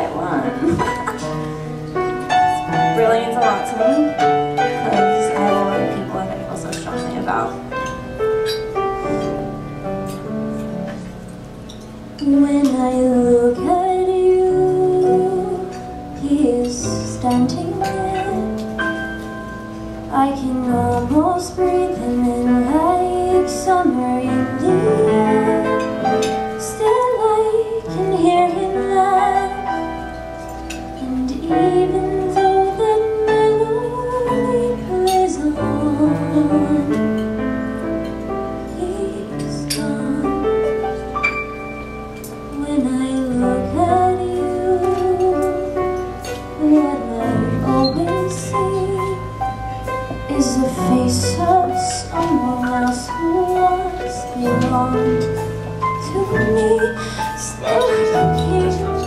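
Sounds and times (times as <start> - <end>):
soft instrumental accompaniment: 0.0 - 59.0
woman singing a slow ballad: 2.6 - 7.7, 12.1 - 41.1, 42.2 - 59.0.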